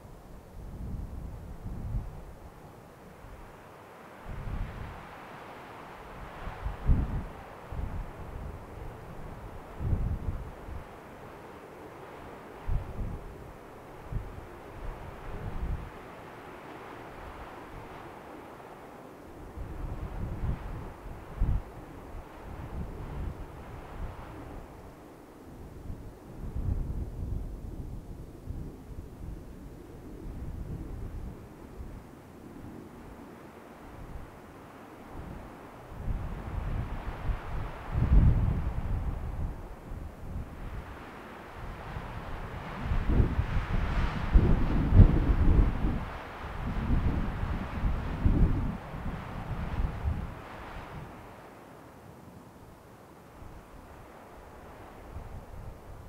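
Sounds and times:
wind buffeting microphone: 0:00.0 - 0:03.6, 0:04.2 - 0:05.4, 0:06.0 - 0:18.4, 0:19.3 - 0:51.5, 0:53.4 - 0:56.0
rushing wind: 0:00.0 - 0:56.0.

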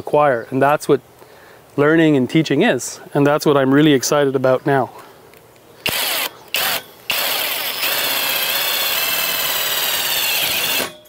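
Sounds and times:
cordless drill on metal pipe: 0:05.8 - 0:11.0.

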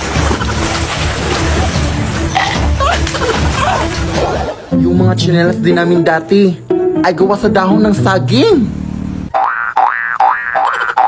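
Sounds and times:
cartoon boing: 0:09.3 - 0:11.0.

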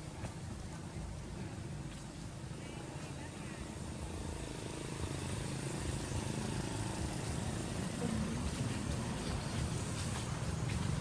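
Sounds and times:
motor vehicle passing rumble: 0:00.0 - 0:11.0.

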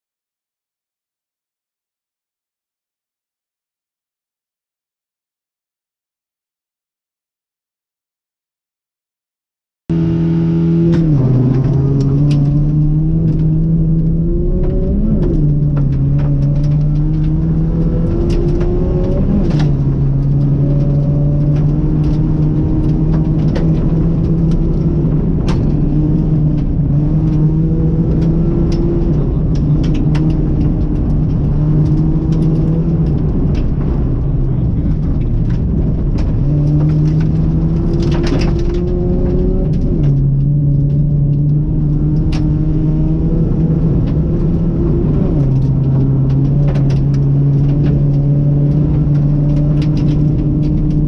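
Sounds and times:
rally car engine revving: 0:09.9 - 0:51.0
sharp clicks and knocks: 0:10.8 - 0:51.0.

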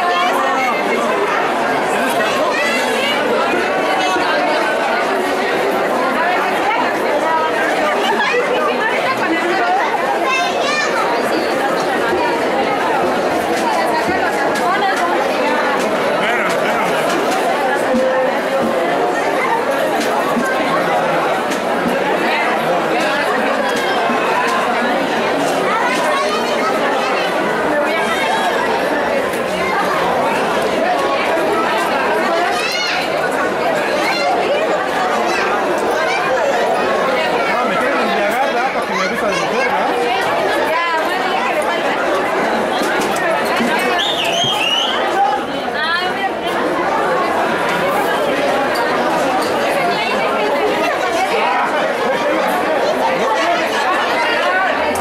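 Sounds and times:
crowd chatter: 0:00.0 - 0:55.0.

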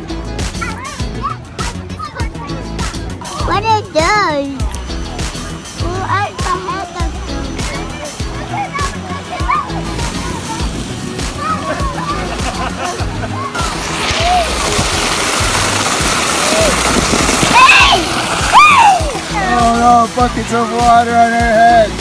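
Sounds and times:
background music: 0:00.0 - 0:22.0
water pouring and splashing: 0:00.0 - 0:22.0.

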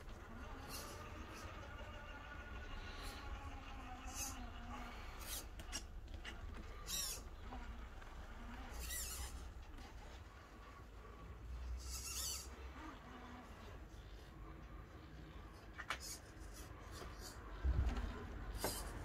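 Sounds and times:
small electric motor whining: 0:00.0 - 0:10.1, 0:11.7 - 0:13.8.

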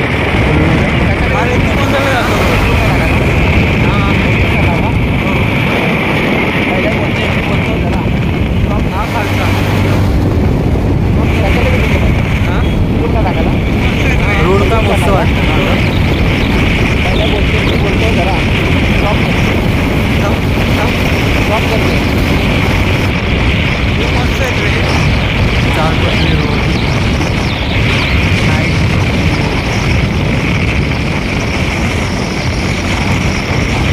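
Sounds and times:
motorbike engine and road noise: 0:00.0 - 0:33.9
wind buffeting microphone: 0:00.0 - 0:33.9.

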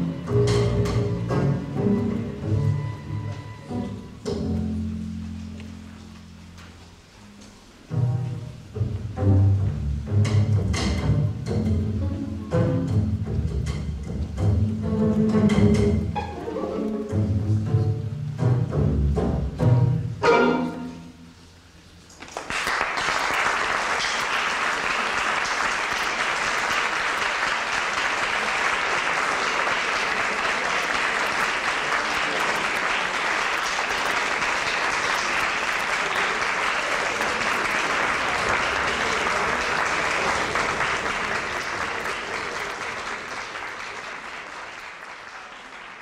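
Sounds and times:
string orchestra chord: 0:14.4 - 0:21.5
audience applauding: 0:22.1 - 0:46.0.

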